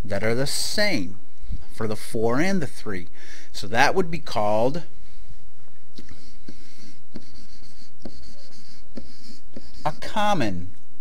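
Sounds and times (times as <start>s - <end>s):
stylus tapping: 6.0s - 10.0s
stylus scratching on tablet: 6.0s - 10.5s.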